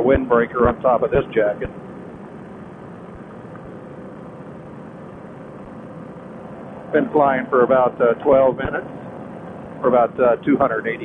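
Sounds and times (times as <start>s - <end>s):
paramotor engine drone: 0.0s - 11.0s.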